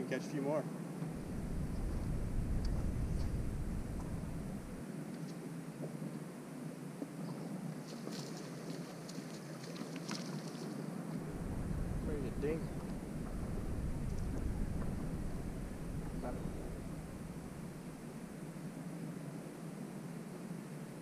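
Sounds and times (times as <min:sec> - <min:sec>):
open-air background: 0:00.0 - 0:21.0
wind rumbling on microphone: 0:01.0 - 0:04.9, 0:09.6 - 0:19.0.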